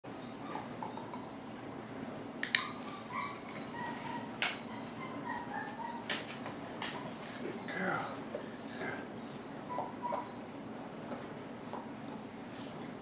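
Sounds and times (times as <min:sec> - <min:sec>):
dog whining faintly: 0:00.1 - 0:01.6, 0:02.6 - 0:12.8
sharp clicks: 0:02.4 - 0:02.7.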